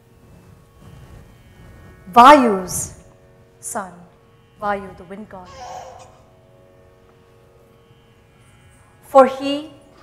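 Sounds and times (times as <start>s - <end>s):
sustained drone: 0.0s - 10.0s.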